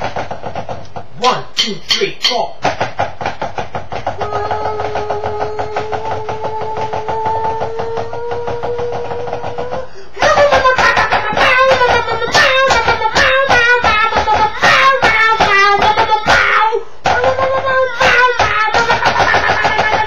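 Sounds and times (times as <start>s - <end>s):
fast percussive beat: 0.0s - 20.0s
man singing: 4.2s - 11.6s.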